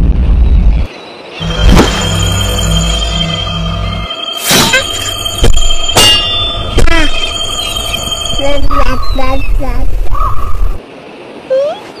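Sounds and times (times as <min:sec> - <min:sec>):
metallic clang with ringing tone: 0:01.7 - 0:09.1.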